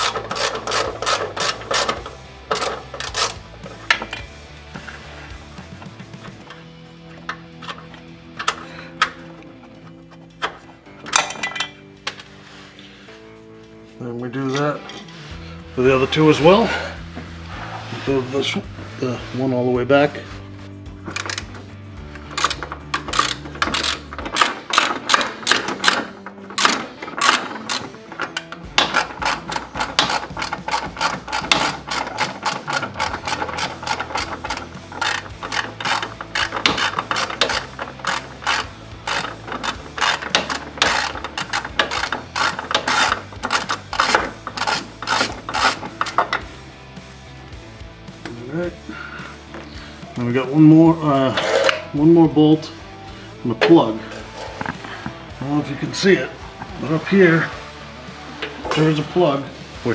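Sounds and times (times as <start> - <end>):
hand ratchet clicking: 0.0 - 4.4, 21.0 - 46.5.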